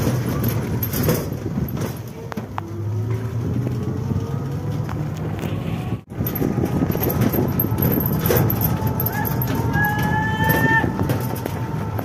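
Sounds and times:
road noise: 0.0s - 12.0s
vehicle running rumble: 0.0s - 12.0s.

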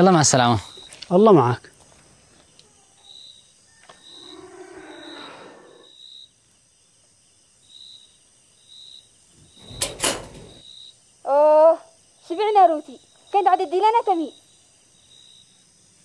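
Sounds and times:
cricket chirping: 0.0s - 16.0s.

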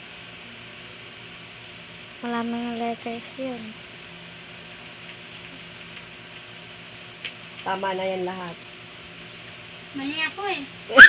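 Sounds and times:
electric fan whirring: 0.0s - 11.0s.

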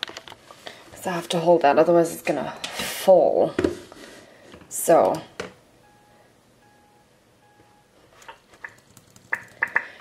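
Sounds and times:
faint countdown beep: 5.8s - 7.9s.

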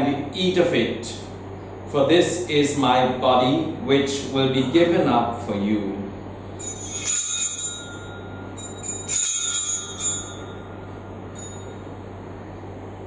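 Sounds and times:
small hand bells ringing: 6.6s - 11.9s.

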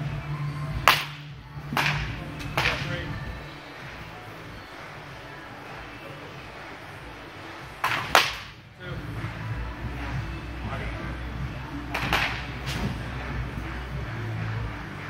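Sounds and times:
wooden bat hitting ball: 0.8s - 3.0s, 7.8s - 8.6s, 11.9s - 13.2s.

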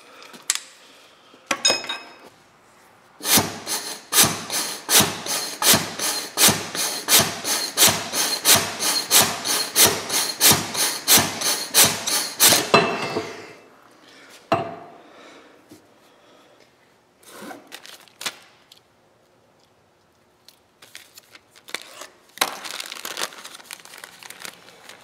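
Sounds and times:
rasping hydraulic piston strokes: 3.2s - 13.5s.

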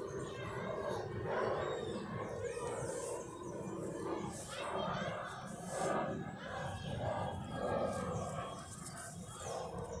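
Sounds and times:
muffled voices talking: 0.0s - 10.0s.

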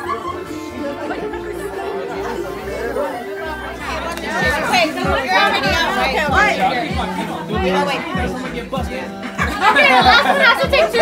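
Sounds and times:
background music: 0.0s - 11.0s
people talking over one another: 0.0s - 11.0s.

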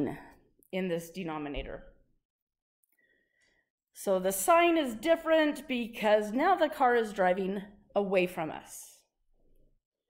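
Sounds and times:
person speaking: 0.8s - 1.9s.

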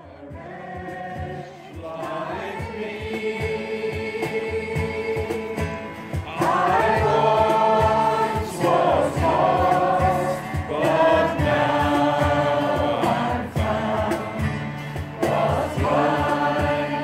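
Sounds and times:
group singing a hymn: 0.0s - 17.0s
strummed acoustic guitars: 0.0s - 17.0s.

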